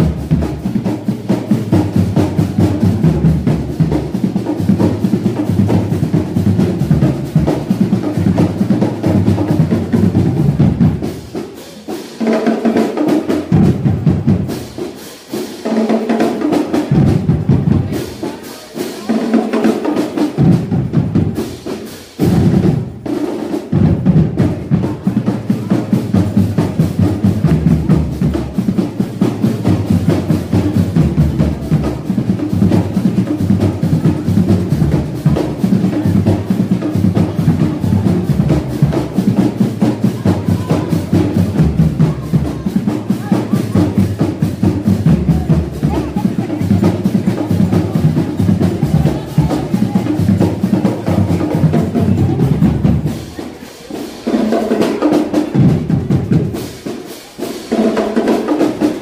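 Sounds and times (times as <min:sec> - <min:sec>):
bass drums: 0:00.0 - 0:11.5, 0:12.7 - 0:14.9, 0:16.0 - 0:18.1, 0:19.5 - 0:53.5, 0:54.7 - 0:56.9
snare drums: 0:00.0 - 0:59.0.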